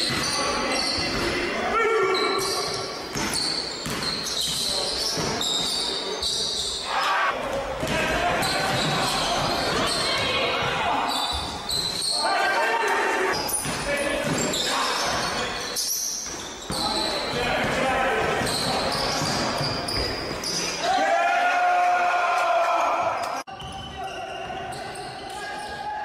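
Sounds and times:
players' voices echoing: 0:00.0 - 0:26.0
basketball bouncing on wooden floor: 0:03.1 - 0:04.6.

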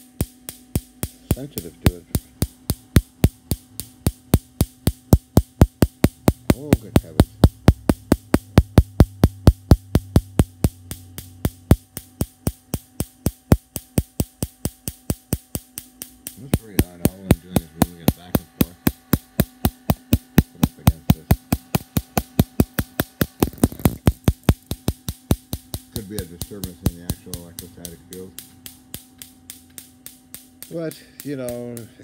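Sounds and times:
electric spark cracking: 0:00.0 - 0:32.0
steady low hum: 0:00.0 - 0:32.0.

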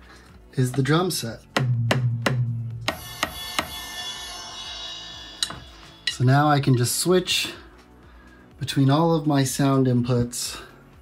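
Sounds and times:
electronic drum hits: 0:01.6 - 0:06.5
ringing cymbal: 0:02.9 - 0:07.1.

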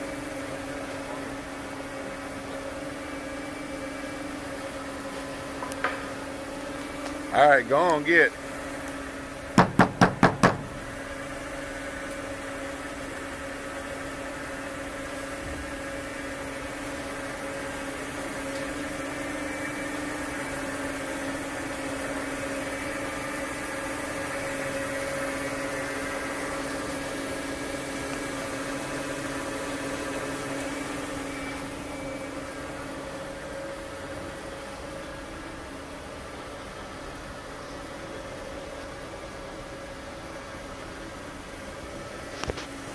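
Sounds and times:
mechanical hum: 0:00.0 - 0:42.9
knocks on steel dumpster: 0:09.6 - 0:10.8.

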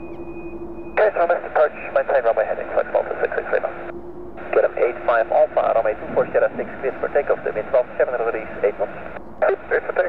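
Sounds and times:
air traffic control radio voices: 0:01.0 - 0:10.0.

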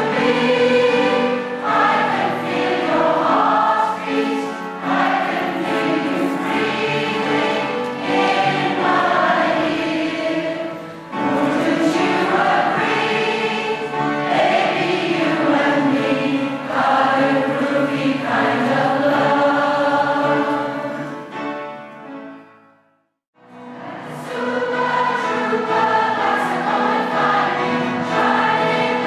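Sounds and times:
choir singing: 0:00.0 - 0:21.5, 0:23.5 - 0:29.0.

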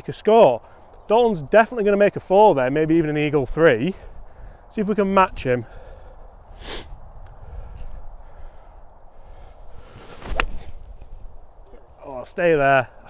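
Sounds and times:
golf club striking ball: 0:10.2 - 0:10.8.

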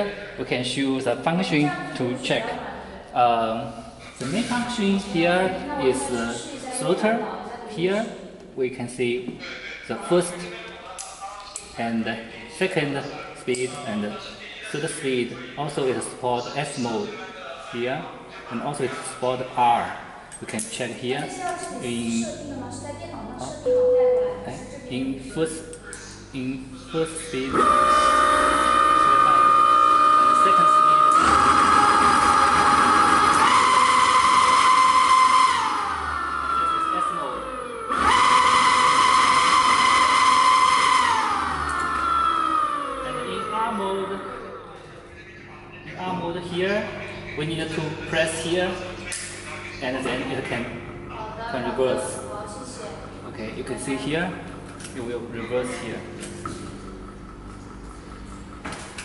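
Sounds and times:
electric motor high whine: 0:26.9 - 0:44.8.

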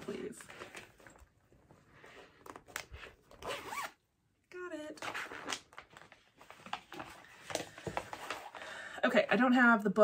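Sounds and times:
zipper clicks: 0:03.3 - 0:04.0.

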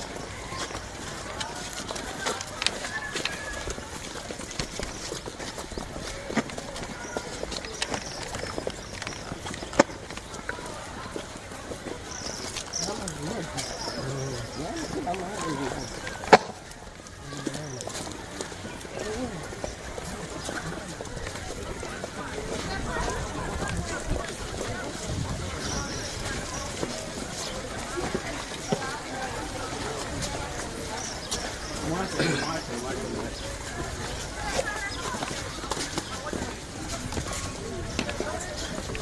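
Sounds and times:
footsteps on grass and earth: 0:00.0 - 0:39.0
indistinct voices: 0:00.0 - 0:39.0.

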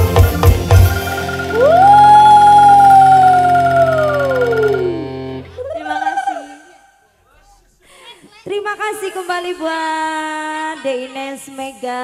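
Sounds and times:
sustained band chord: 0:00.0 - 0:05.7
brief pitched sound: 0:01.0 - 0:05.9
lead tone sliding down in pitch: 0:01.0 - 0:06.2.

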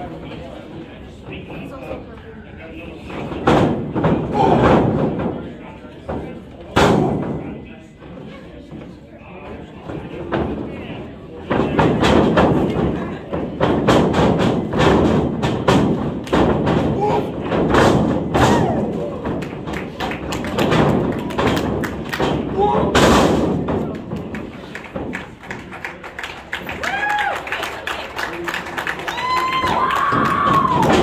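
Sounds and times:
hard thuds and slaps: 0:11.5 - 0:24.4.

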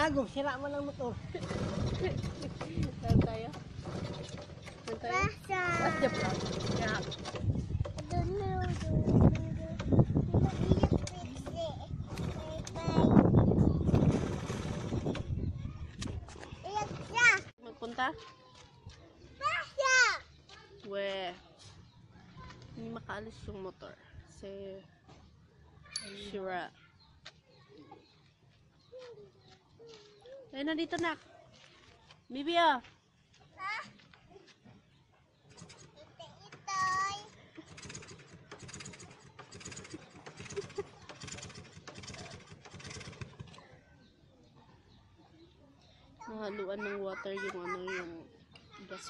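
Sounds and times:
motorcycle engine running roughly: 0:01.4 - 0:04.7, 0:05.8 - 0:07.9, 0:13.8 - 0:15.2, 0:37.6 - 0:43.6.

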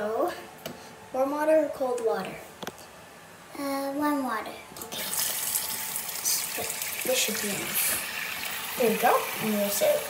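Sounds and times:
tap water splashing into sink: 0:06.4 - 0:09.5.

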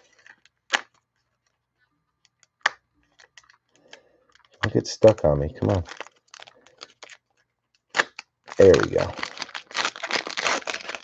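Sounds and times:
foil wrapper crackling: 0:00.0 - 0:01.6, 0:02.6 - 0:11.0.

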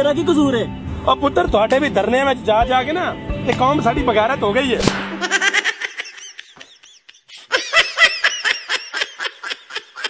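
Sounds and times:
high-pitched laugh: 0:05.2 - 0:10.0.

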